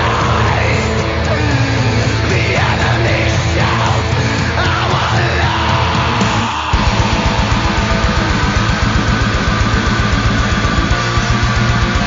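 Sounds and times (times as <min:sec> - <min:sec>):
heavily distorted guitars: 0:00.0 - 0:12.0
double-kick bass drumming: 0:06.8 - 0:12.0.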